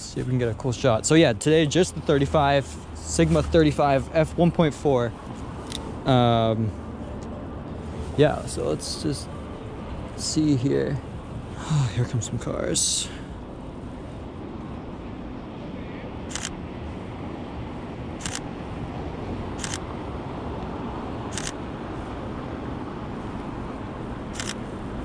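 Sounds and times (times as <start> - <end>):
street traffic hum: 0.0 - 25.0
camera shutter clicks: 16.3 - 16.6, 18.2 - 18.4, 19.6 - 19.8, 21.3 - 21.6, 24.4 - 24.6.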